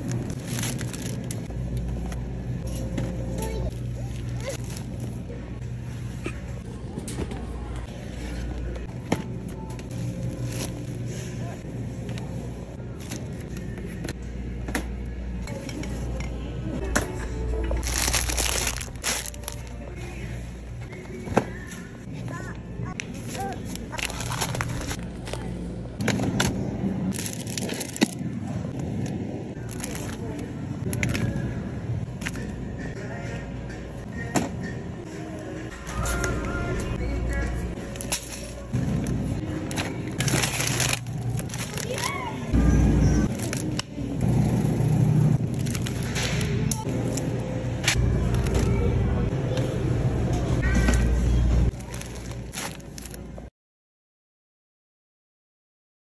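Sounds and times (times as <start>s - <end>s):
plastic bag crinkling: 0.0s - 1.4s, 17.8s - 19.8s, 39.7s - 42.3s
low store hum: 0.0s - 53.5s.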